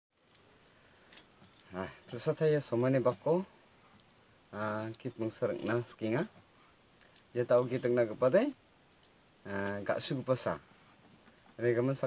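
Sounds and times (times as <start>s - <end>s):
metallic jangle of clicks: 1.1s - 2.3s, 4.0s - 6.4s, 7.0s - 8.0s, 8.9s - 10.2s.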